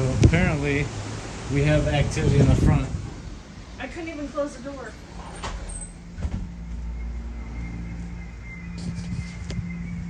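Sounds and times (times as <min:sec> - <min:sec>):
low rumble of storm wind: 0:00.0 - 0:10.0.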